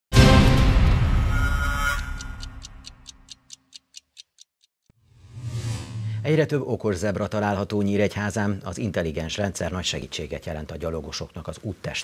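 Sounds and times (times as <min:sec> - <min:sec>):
tv theme music: 0:00.1 - 0:03.4
clock-like ticking: 0:01.9 - 0:04.7.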